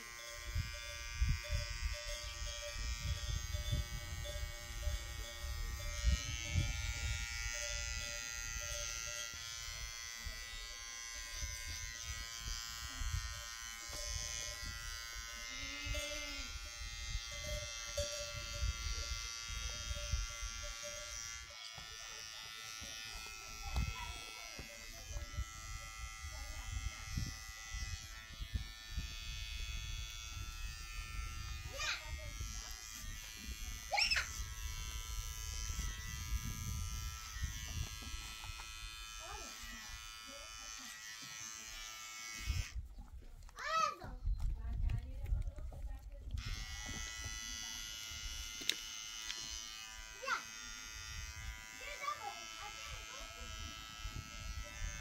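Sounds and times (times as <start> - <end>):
buzzing hum: 0.0 - 42.8, 46.3 - 55.0.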